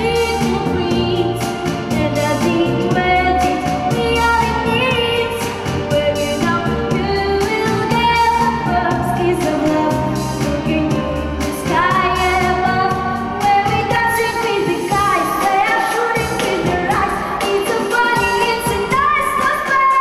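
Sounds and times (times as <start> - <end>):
backing track with bass beat: 0.0 - 20.0
girl singing pop song: 0.0 - 20.0.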